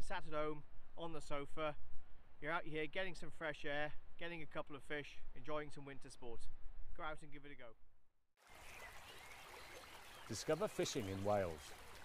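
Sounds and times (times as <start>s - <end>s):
flowing water rushing: 8.4s - 12.0s.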